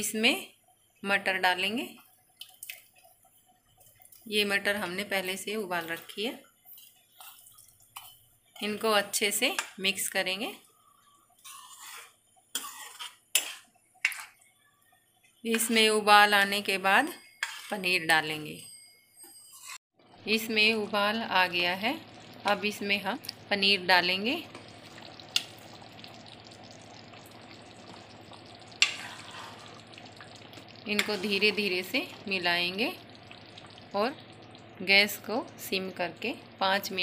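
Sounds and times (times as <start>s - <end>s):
gravy bubbling in pan: 1.9s - 9.8s, 10.5s - 15.8s, 20.0s - 37.0s
metal spoon scraping a pan: 6.7s - 8.8s, 11.3s - 14.4s, 17.2s - 18.0s, 19.3s - 19.8s, 28.8s - 29.8s, 30.9s - 31.9s.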